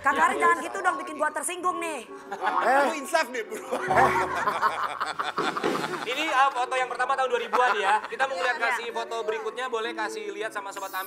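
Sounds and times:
people laughing and snickering: 0:02.2 - 0:08.6.

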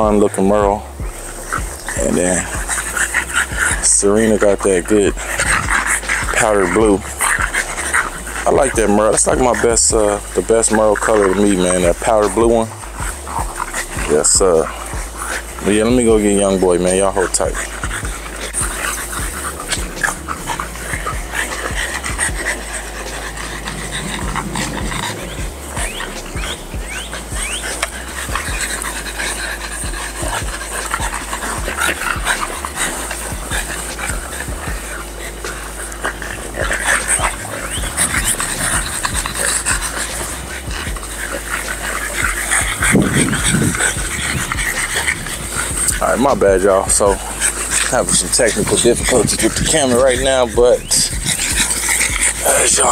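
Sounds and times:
dogs panting and snuffling: 0:00.0 - 0:52.9.

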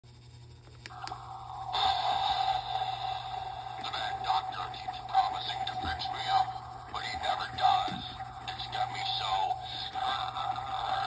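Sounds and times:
noisy hum with held tone: 0:00.1 - 0:11.0.

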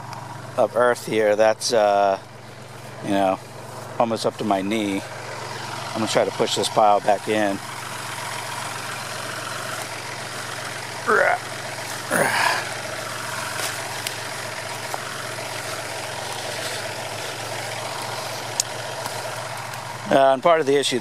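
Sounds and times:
tractor diesel engine idling: 0:00.0 - 0:21.0.

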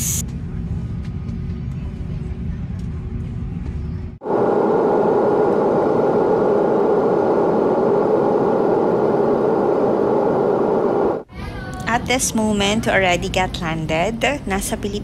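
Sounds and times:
airliner cabin rumble: 0:00.0 - 0:11.3
rushing air noise: 0:04.2 - 0:11.3.

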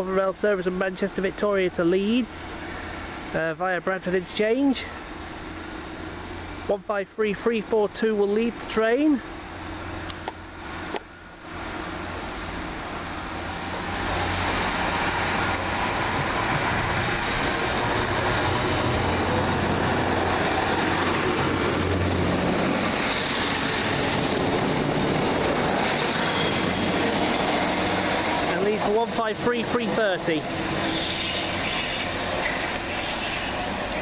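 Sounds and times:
diesel engines running: 0:00.0 - 0:34.0
train wheel and rail noise: 0:00.0 - 0:34.0.

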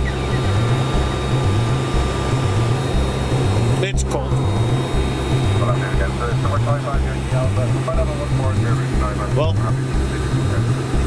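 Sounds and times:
warning alarm: 0:00.0 - 0:10.8.

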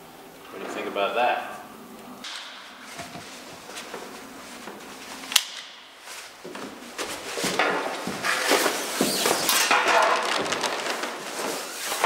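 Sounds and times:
fabric rustling: 0:02.7 - 0:12.0.

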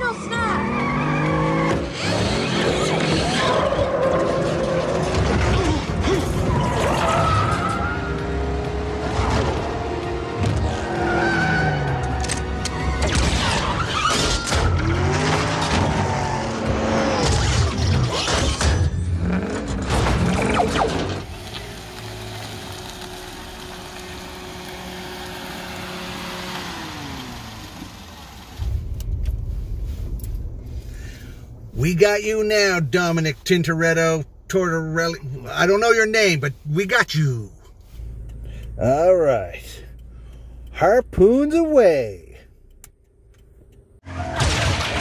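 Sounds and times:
engines revving: 0:00.0 - 0:30.2
crashing impacts: 0:44.1 - 0:45.0.

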